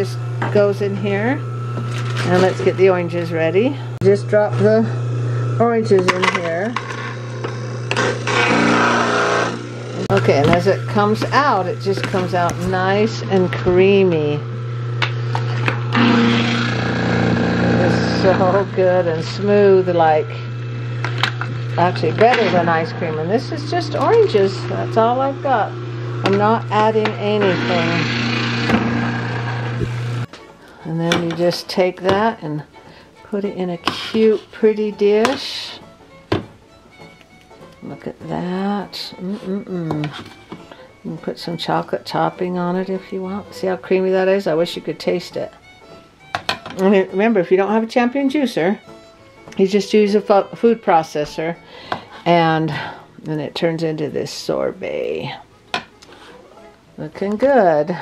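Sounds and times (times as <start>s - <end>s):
faint background music: 0.0s - 14.6s, 16.6s - 20.6s, 21.3s - 29.0s, 29.8s - 58.0s
juicer motor humming: 0.0s - 53.3s
frozen fruit grinding: 1.4s - 13.7s, 14.5s - 30.5s.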